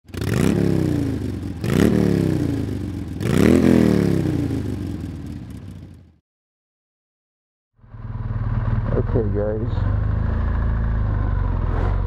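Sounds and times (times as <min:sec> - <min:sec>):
motorcycle engine revving: 0:00.0 - 0:06.2, 0:07.8 - 0:12.0.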